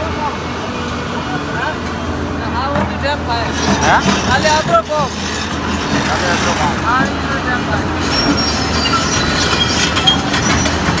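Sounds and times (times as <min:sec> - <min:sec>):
heavy machinery running: 0:00.0 - 0:11.0
high squeals: 0:08.0 - 0:11.0.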